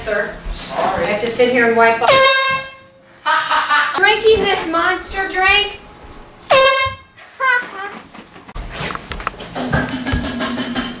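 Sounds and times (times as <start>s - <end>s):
air horn blast: 2.0s - 3.0s, 6.4s - 7.2s.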